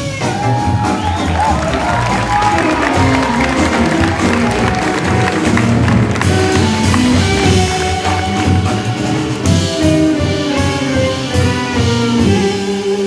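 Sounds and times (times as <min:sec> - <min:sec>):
jazz ensemble playing: 0:00.0 - 0:13.0
piano: 0:00.0 - 0:13.0
walking bass line: 0:00.3 - 0:12.6.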